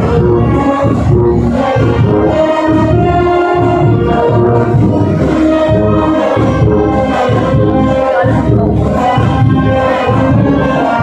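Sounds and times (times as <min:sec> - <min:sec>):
brass marching band playing: 0:00.0 - 0:11.0.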